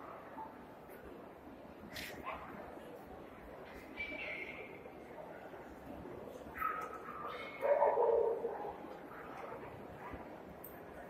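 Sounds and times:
crowded hall background noise: 0.0s - 11.0s
dog barking: 6.6s - 8.8s.

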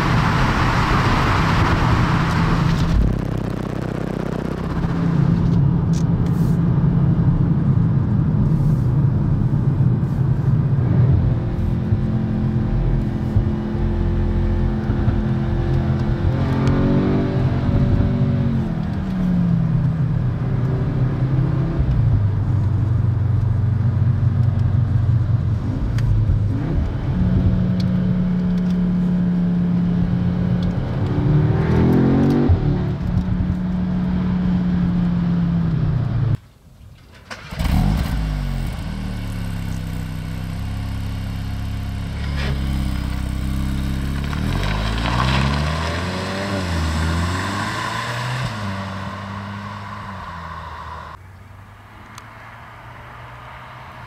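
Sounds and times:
car engine running: 1.0s - 10.6s.

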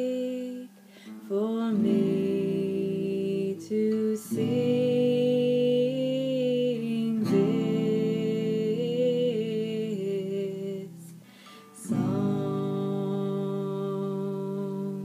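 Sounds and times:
acoustic guitar: 0.0s - 15.0s
woman singing: 0.0s - 15.0s.

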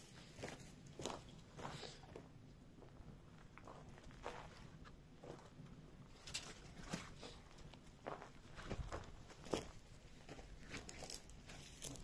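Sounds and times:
footsteps on dry grass: 0.1s - 2.0s, 7.6s - 12.0s.

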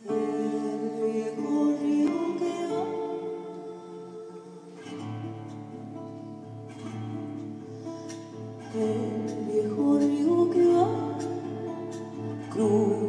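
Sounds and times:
woman singing wordless notes: 0.0s - 5.1s, 8.6s - 13.0s
classical guitar playing: 0.0s - 13.0s.

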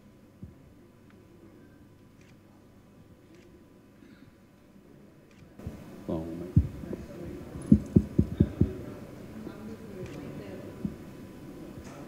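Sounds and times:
thumps on a microphone: 6.6s - 6.8s, 7.7s - 8.8s.

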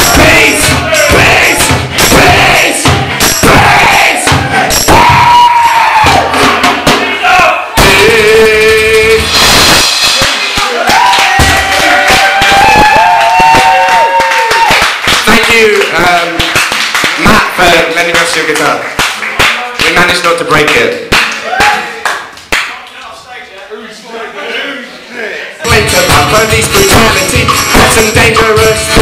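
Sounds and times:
crowd singing along: 0.0s - 5.2s, 6.2s - 10.3s
voices singing and shouting: 0.0s - 13.8s, 24.5s - 29.0s
live band music: 7.8s - 12.4s.

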